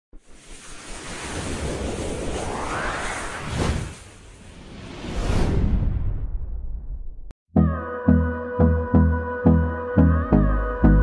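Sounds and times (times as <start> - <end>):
rushing whoosh with low rumble: 0.2 - 7.3.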